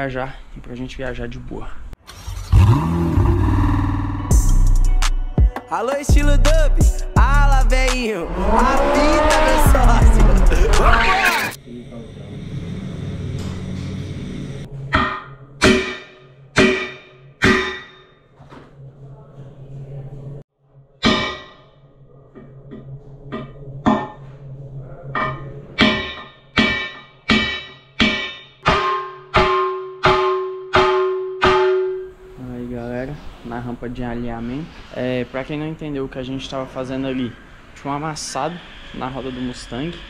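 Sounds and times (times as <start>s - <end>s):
steady low hum: 7.2s - 14.9s
hammer striking metal rim: 14.9s - 18.2s, 21.0s - 21.7s, 25.2s - 32.1s.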